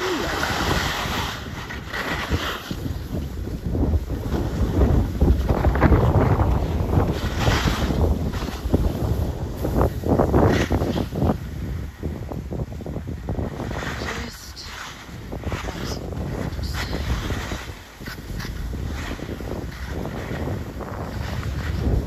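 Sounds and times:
wind buffeting microphone: 0.0s - 22.0s
skis scraping on packed snow: 0.2s - 12.3s, 12.9s - 22.0s.

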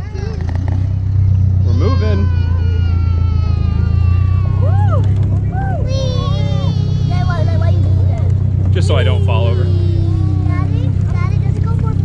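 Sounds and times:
children chattering: 0.0s - 12.0s
tractor engine droning: 0.0s - 12.0s.

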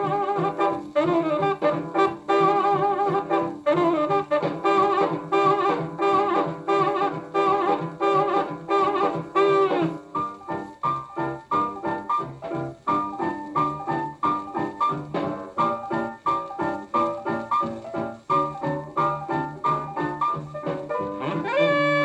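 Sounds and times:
saxophone riff: 0.0s - 10.3s, 20.9s - 22.0s
jump blues record playing: 0.0s - 22.0s.

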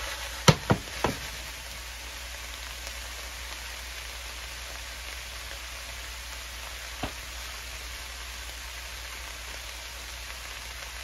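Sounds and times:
vegetables sizzling in a skillet: 0.0s - 11.0s
pan knocking on stovetop: 0.4s - 1.3s.

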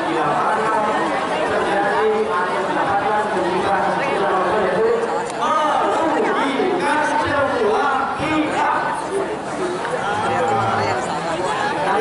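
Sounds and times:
man talking over loudspeaker: 0.0s - 9.1s
crowd chatter: 0.0s - 12.0s.

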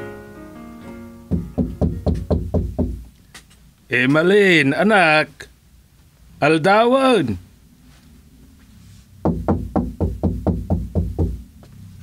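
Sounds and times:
rapid knocking: 1.3s - 3.0s, 9.2s - 11.4s.

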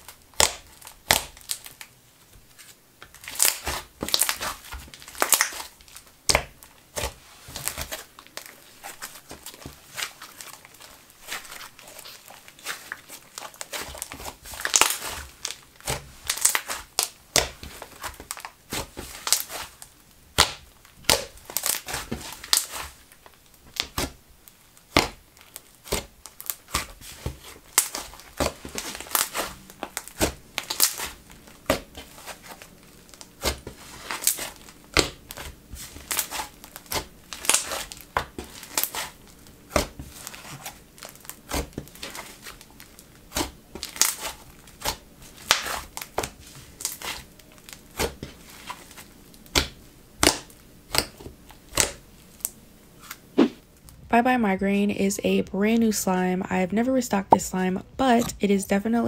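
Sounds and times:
slime crackling and popping: 0.0s - 1.9s, 2.5s - 54.0s.

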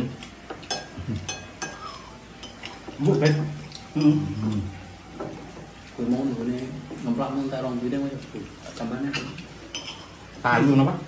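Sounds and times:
spoons clinking on ceramic plates: 0.2s - 4.4s, 8.8s - 10.3s.

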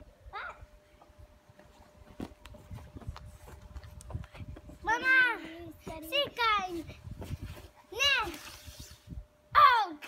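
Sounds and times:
child calling out: 0.3s - 0.7s.

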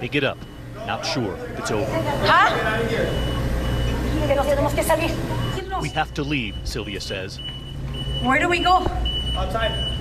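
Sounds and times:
electronic alarm beeping: 0.0s - 10.0s
steady low hum: 0.0s - 10.0s.

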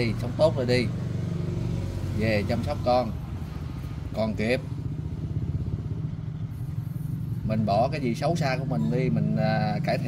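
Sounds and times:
engine running steadily: 0.0s - 10.0s.

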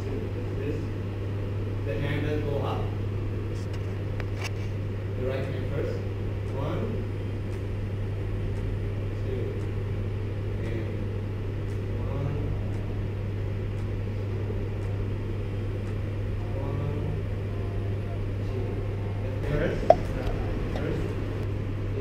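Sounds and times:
rumble of room noise: 0.0s - 22.0s
steady low hum: 0.0s - 22.0s.

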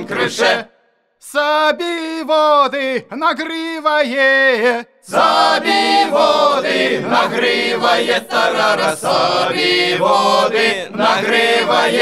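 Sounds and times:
choir singing without instruments: 0.0s - 0.8s, 5.0s - 12.0s.

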